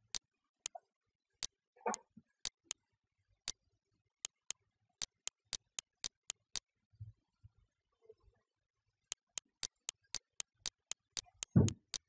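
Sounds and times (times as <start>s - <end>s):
computer mouse clicks: 1.9s - 2.8s, 4.3s - 6.6s, 9.1s - 12.0s.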